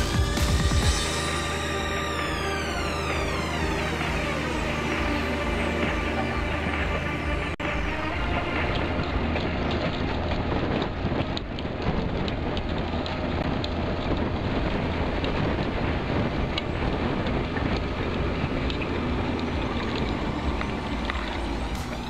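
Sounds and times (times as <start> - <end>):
tractor engine drone under load: 0.0 - 22.0.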